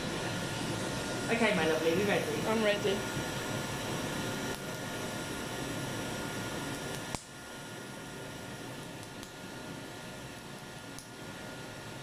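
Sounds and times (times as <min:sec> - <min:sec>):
machine fan whirring: 0:00.0 - 0:12.0.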